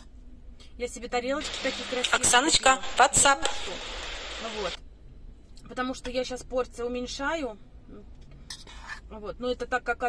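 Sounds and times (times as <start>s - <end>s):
woman talking: 0.8s - 4.8s, 5.7s - 7.6s, 9.1s - 10.0s
steady hiss: 1.4s - 4.8s.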